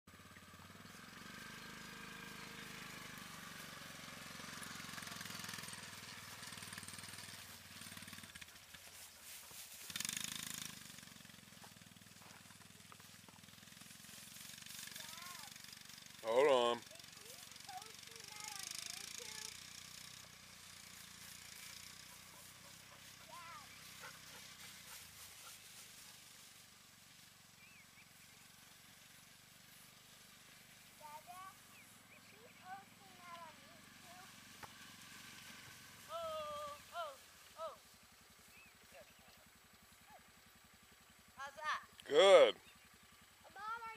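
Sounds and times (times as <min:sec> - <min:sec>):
atv engine running: 0:00.1 - 0:43.9.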